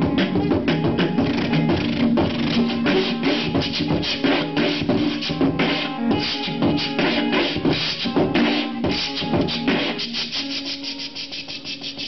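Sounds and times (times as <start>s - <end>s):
beatboxing into a microphone: 0.0s - 12.0s.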